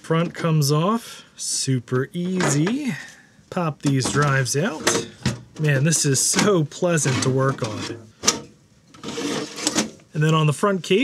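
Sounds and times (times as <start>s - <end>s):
drive scraping in metal bay: 3.9s - 10.0s.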